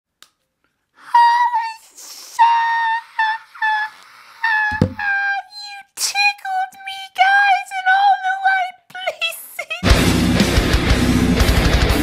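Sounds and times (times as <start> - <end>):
breathy hiss: 1.8 - 4.7
dull thump: 4.7 - 5.0.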